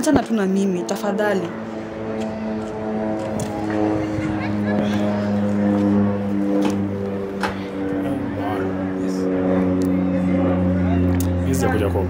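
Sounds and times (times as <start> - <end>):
faint voices murmuring: 0.0 - 12.0
low drone of held tones: 0.0 - 12.0.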